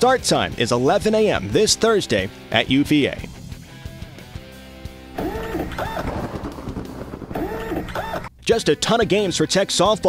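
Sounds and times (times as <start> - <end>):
rhythmic electronic warble: 5.2 - 8.3.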